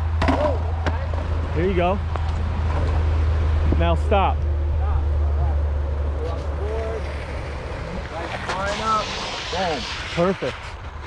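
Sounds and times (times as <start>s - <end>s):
longboard wheels rolling on asphalt: 0.0s - 11.0s.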